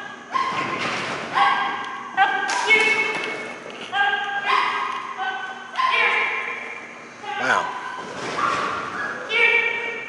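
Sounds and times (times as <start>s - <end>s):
dog barking: 1.4s - 2.4s, 4.4s - 6.4s.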